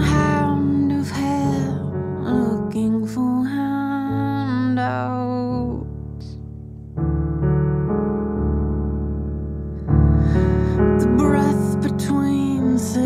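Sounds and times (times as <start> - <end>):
woman singing: 0.0 - 6.4, 10.3 - 13.0
bass-heavy piano chords: 0.0 - 13.0.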